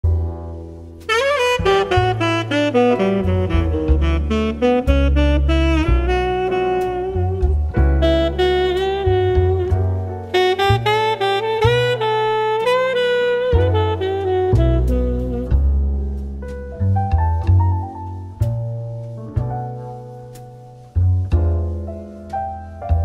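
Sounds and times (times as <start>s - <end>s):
instrumental jazz: 0.1s - 23.0s.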